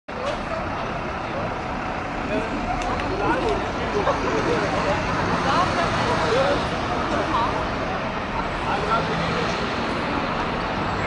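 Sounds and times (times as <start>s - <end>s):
bus engine and road rumble: 0.1s - 11.0s
busy city street noise: 0.1s - 11.0s
faint voices of passers-by: 0.1s - 11.0s.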